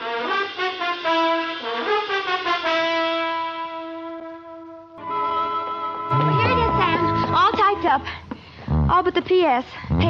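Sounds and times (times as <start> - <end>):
brass chords: 0.0 - 8.2.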